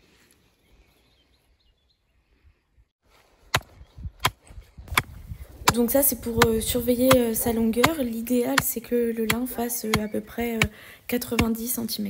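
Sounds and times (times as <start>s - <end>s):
wind noise on microphone: 3.5s - 8.5s
hammer striking wooden stake: 3.5s - 11.7s.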